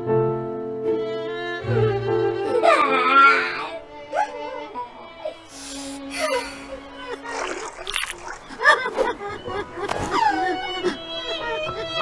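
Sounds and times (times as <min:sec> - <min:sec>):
background music: 0:00.0 - 0:12.0
cartoon character crying and sobbing: 0:02.4 - 0:04.6.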